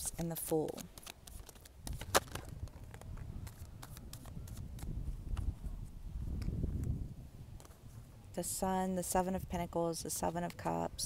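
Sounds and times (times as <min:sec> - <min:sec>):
cards snapping and clicking: 0:00.2 - 0:05.5
wind rumble on microphone: 0:01.7 - 0:11.0.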